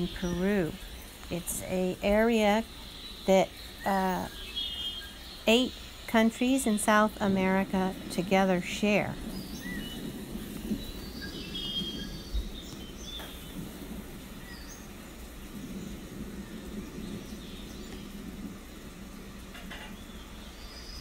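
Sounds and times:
steady background hiss: 0:00.0 - 0:21.0
bird chirps: 0:09.2 - 0:13.5.

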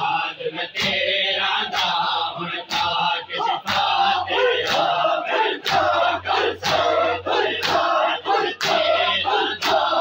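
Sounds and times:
crowd shouting and chanting: 0:00.0 - 0:10.0.

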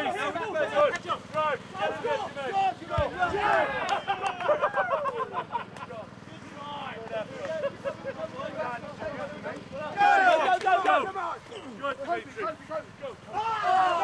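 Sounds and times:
men shouting and yelling: 0:00.0 - 0:14.0.

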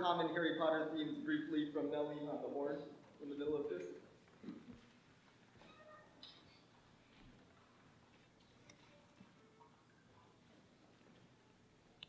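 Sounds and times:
faint ticks and rustles: 0:04.2 - 0:12.0.

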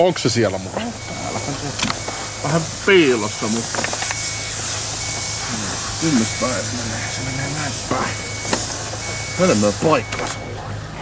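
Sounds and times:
steady hiss and low hum: 0:00.0 - 0:11.0
high electronic beep: 0:00.8 - 0:10.6.

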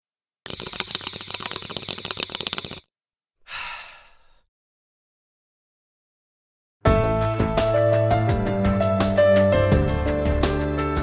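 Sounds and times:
crackling bubbling smoke draw: 0:00.5 - 0:02.8
breathy exhale: 0:03.4 - 0:04.5.

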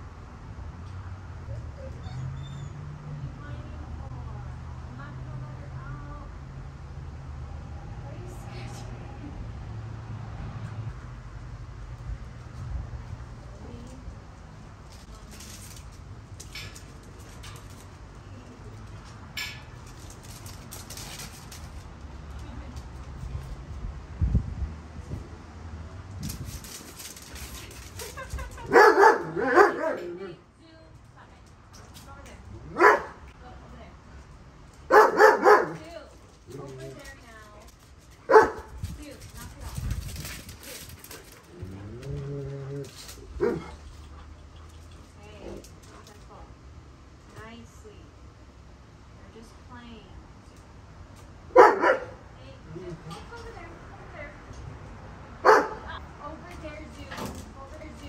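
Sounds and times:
dogs barking: 0:28.6 - 0:30.1, 0:32.7 - 0:33.2, 0:34.9 - 0:35.8, 0:38.3 - 0:38.7, 0:51.5 - 0:52.2, 0:55.4 - 0:55.9.

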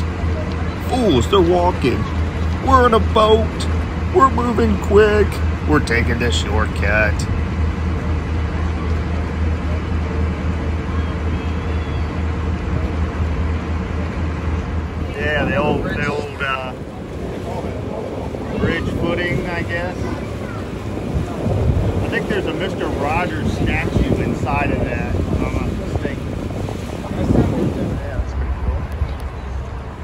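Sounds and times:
people talking: 0:00.0 - 0:07.3, 0:15.0 - 0:30.0
boat engine hum: 0:00.0 - 0:30.0
water wash: 0:00.0 - 0:30.0
wind on microphone: 0:06.6 - 0:30.0.

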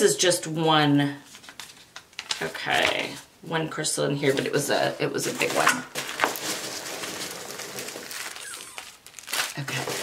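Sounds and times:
plastic wrap rustling and crinkling: 0:01.2 - 0:03.2, 0:04.2 - 0:10.0.

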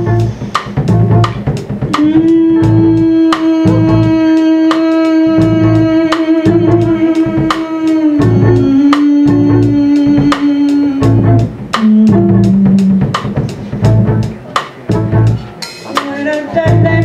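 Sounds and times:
drum and cymbal beat: 0:00.0 - 0:17.0
plucked upright bass: 0:00.0 - 0:17.0.

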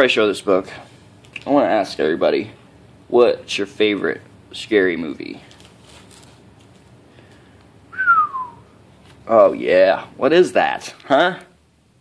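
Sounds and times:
person whistling downward note: 0:07.9 - 0:08.7.

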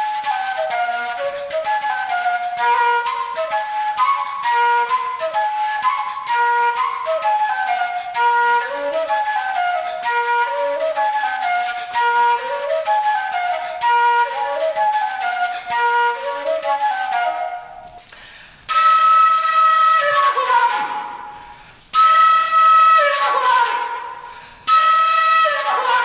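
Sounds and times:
transverse flute solo: 0:00.0 - 0:26.0.

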